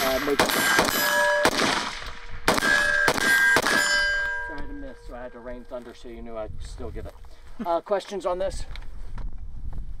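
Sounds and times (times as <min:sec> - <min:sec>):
rifle shots: 0:00.0 - 0:04.6
steel target ringing: 0:00.0 - 0:05.7.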